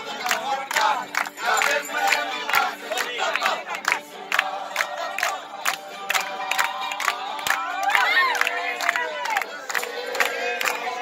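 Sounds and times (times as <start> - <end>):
crowd shouting and singing: 0.0 - 11.0.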